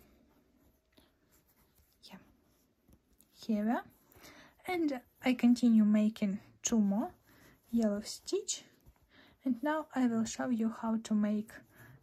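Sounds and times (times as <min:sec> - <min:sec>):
cord rustling on crochet hook: 0:00.0 - 0:12.0.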